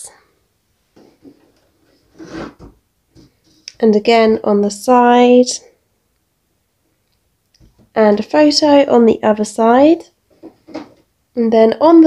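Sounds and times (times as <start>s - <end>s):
box scraping on tabletop: 1.2s - 3.5s.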